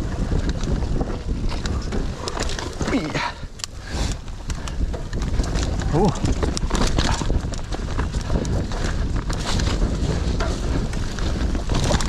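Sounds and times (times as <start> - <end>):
bike clicks and rattles: 0.0 - 12.0
bike tyres rumbling on dirt: 0.0 - 12.0
wind on microphone: 0.0 - 12.0.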